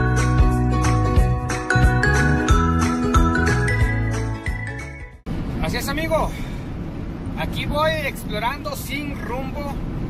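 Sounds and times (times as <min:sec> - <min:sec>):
car road and engine rumble: 0:01.9 - 0:10.0
man talking: 0:05.6 - 0:06.5, 0:07.3 - 0:09.8.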